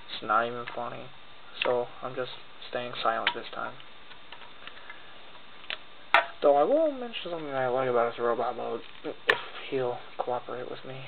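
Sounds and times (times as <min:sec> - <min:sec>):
steady hiss: 0:00.0 - 0:11.0.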